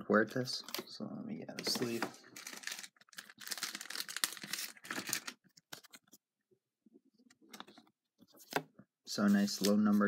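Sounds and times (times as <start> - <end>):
plastic sleeve crinkling: 1.6 - 6.0.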